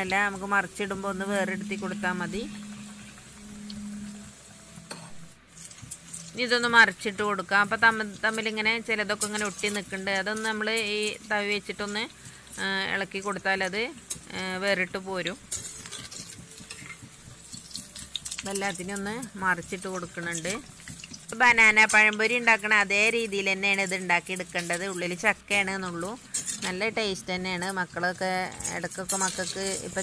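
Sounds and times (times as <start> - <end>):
metal spoon stirring in pan: 0.0 - 30.0
oil sizzling while deep-frying: 0.0 - 30.0.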